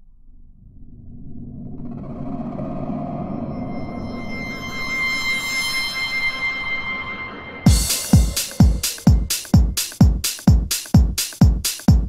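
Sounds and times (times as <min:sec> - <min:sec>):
sustained high synth tone: 0:03.3 - 0:09.0.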